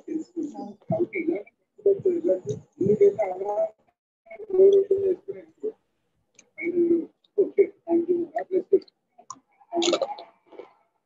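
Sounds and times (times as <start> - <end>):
indistinct talking: 0.0 - 11.0.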